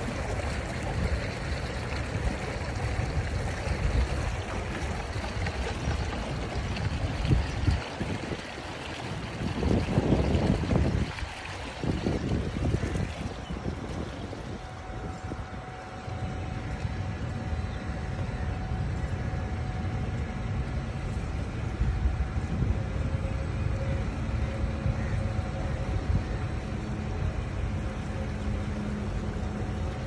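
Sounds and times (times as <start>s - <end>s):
boat rumbling on water: 0.0s - 30.0s
faint steady whine: 0.0s - 30.0s
low hum: 0.0s - 30.0s
wind buffeting microphone: 0.0s - 30.0s.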